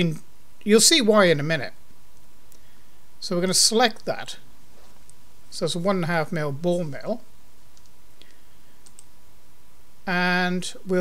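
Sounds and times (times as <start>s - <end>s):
low background noise: 0.0s - 11.0s
computer mouse clicking: 7.7s - 9.1s.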